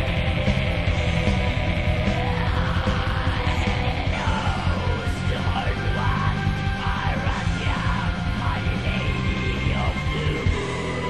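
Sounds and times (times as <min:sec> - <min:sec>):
black metal music: 0:00.0 - 0:11.0
harsh yelled vocal: 0:00.0 - 0:11.0.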